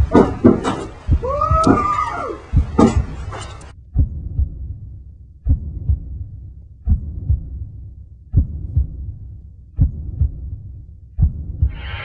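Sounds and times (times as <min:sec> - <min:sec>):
dull thumps: 0:00.0 - 0:04.6.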